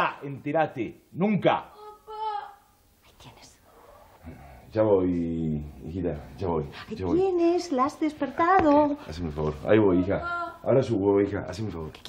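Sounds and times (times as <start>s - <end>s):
girl calling out: 1.8s - 2.7s, 9.9s - 10.6s.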